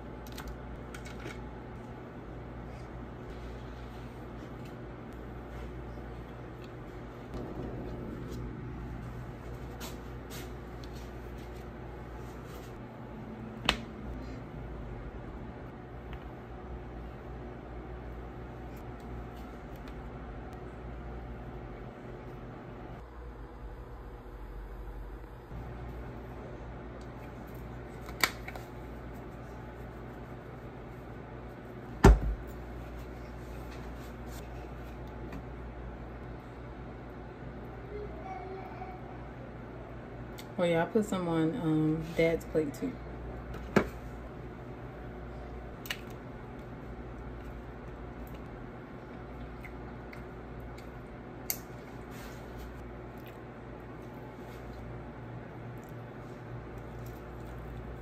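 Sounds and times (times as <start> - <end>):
low background hum: 0.0 - 58.0.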